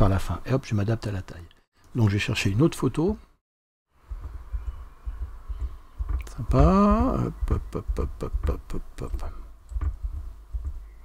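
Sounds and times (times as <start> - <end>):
low dull thumps: 4.0 - 11.0
man humming: 6.2 - 9.5.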